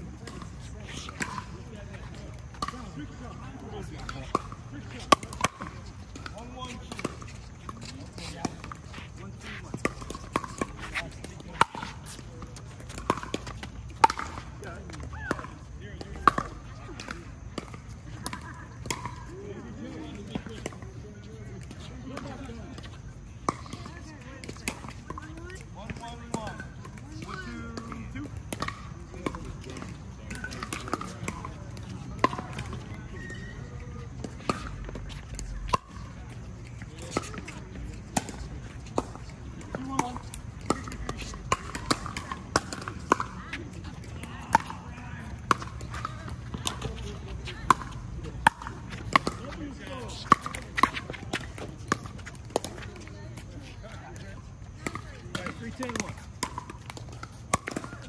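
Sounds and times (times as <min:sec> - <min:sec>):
people talking: 0:00.0 - 0:56.3.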